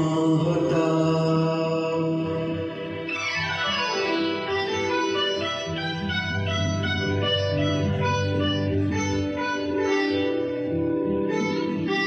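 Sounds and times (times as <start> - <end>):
man singing long note: 0.0 - 3.0
backing music track: 0.0 - 12.0.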